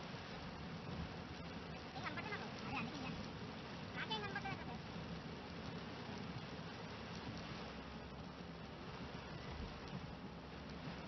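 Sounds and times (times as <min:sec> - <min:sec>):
heavy rain on moving car: 0:00.0 - 0:11.0.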